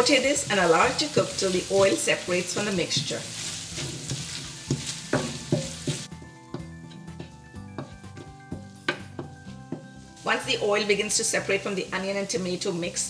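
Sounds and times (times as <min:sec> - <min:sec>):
masala sizzling in hot oil: 0:00.0 - 0:13.0
soft background music: 0:00.0 - 0:13.0
wooden spatula scraping pan: 0:00.1 - 0:11.7.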